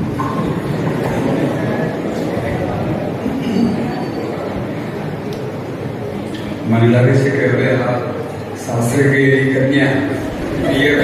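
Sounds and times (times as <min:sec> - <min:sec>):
murmuring voices: 0:00.0 - 0:11.0
audience laughing: 0:10.2 - 0:11.0.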